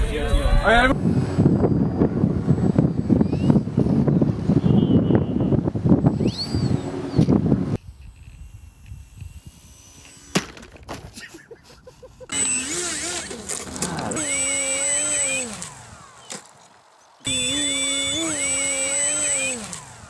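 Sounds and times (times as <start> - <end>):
electric model airplane motor whine: 1.0 - 4.7, 5.3 - 10.9, 12.3 - 20.0.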